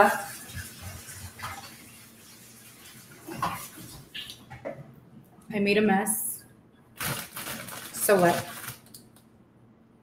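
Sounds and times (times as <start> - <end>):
kitchen tap running: 0.0 - 4.8.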